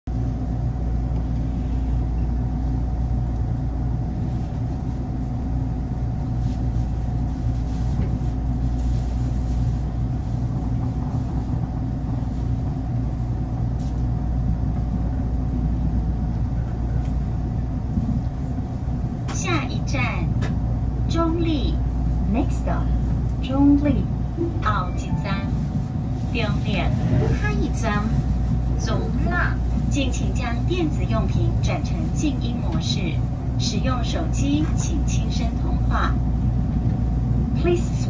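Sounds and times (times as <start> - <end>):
train car hum and rumble: 0.0 - 38.0.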